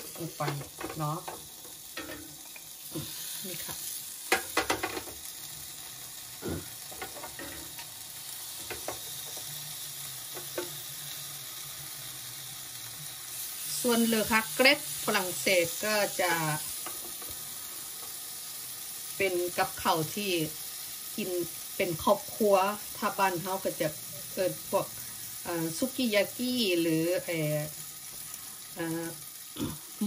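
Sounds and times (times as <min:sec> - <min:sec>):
pans clicking: 0:00.0 - 0:02.7, 0:04.3 - 0:05.4, 0:06.6 - 0:09.6, 0:10.3 - 0:10.8, 0:16.8 - 0:18.2
grill sizzling: 0:00.0 - 0:30.0.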